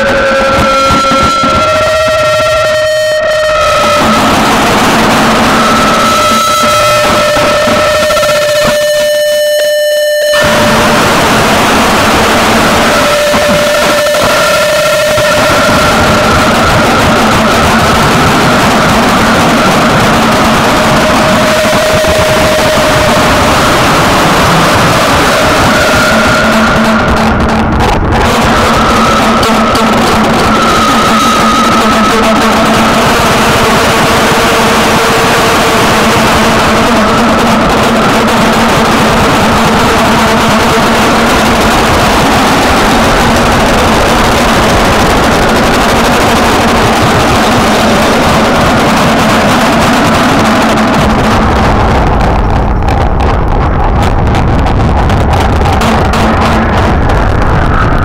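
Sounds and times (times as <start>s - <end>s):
wall of distorted noise: 0.0s - 58.0s.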